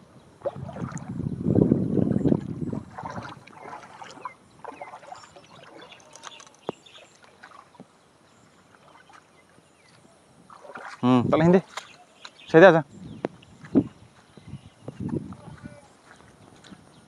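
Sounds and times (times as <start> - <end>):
feet wading through water: 0.4 - 17.0.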